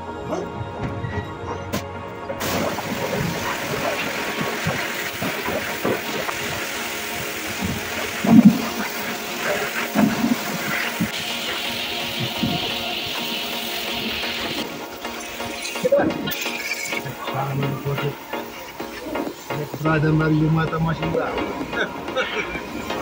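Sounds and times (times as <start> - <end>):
background music: 0.0 - 23.0
pressure washer spraying: 2.4 - 20.6.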